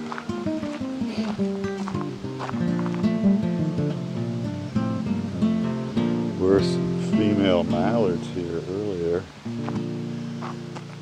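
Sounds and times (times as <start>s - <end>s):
acoustic guitar strummed and plucked: 0.0s - 11.0s.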